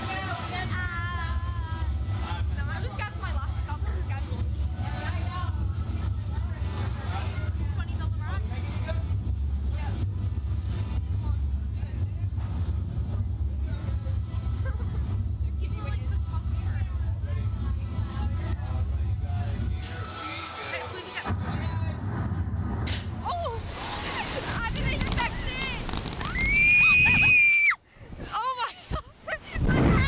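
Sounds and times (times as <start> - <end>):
steady low rumble: 0.0 - 19.9, 21.2 - 27.2
indistinct talk: 0.0 - 22.4, 23.1 - 26.2.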